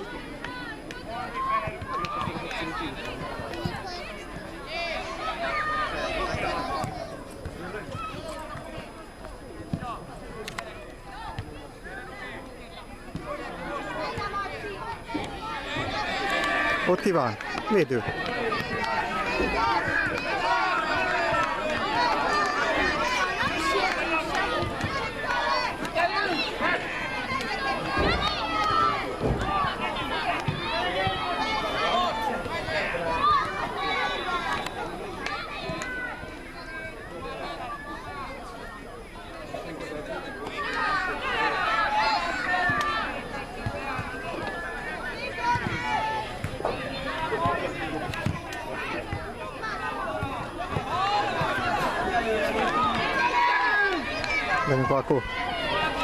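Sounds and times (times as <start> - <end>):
children calling and shouting: 0.0 - 56.0.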